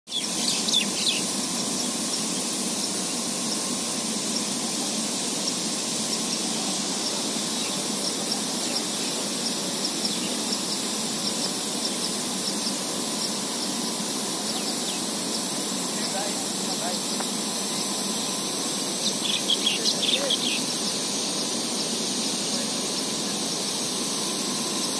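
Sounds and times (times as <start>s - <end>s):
birds chirping: 0.1s - 23.8s
sprinklers spraying water: 0.1s - 24.9s.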